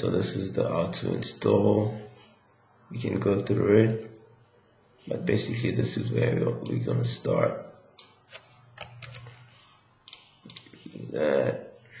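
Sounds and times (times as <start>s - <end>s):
keyboard and mouse clicking: 8.0s - 9.4s, 10.1s - 10.7s.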